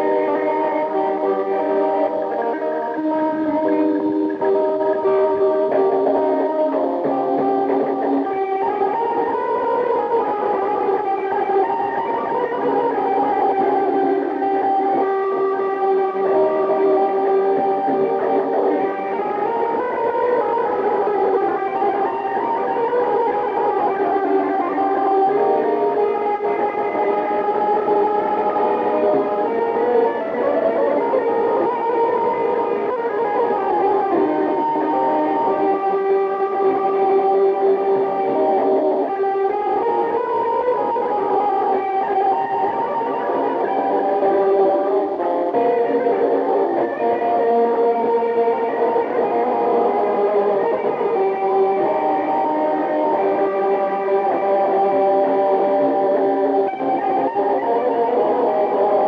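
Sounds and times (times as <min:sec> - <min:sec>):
electric guitar melody: 0:00.0 - 0:59.0.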